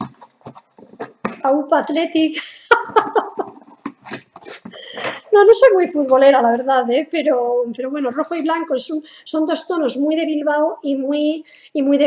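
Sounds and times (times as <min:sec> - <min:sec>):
woman laughing: 0:02.3 - 0:03.9.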